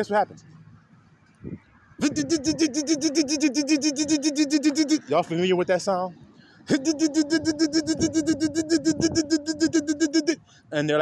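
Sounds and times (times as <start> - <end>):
man imitating car engine cranking: 2.0 - 5.3, 6.6 - 10.5.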